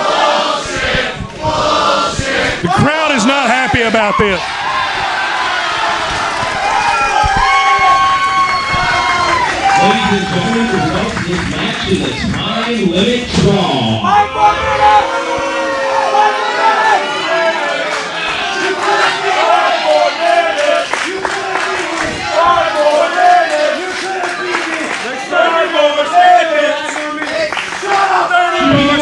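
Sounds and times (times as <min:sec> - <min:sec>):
crowd shouting: 0:00.0 - 0:11.1, 0:13.3 - 0:26.9, 0:27.7 - 0:29.0.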